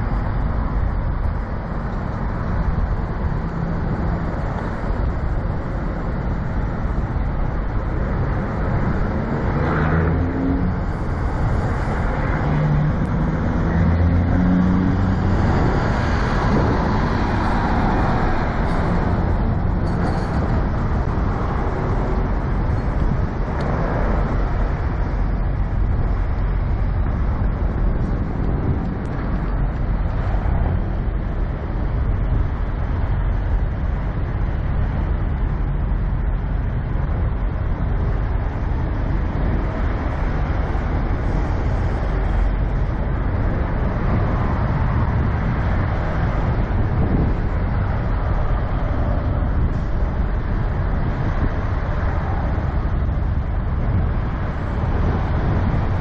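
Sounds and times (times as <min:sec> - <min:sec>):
diesel truck engine rumble: 0:00.0 - 0:56.0.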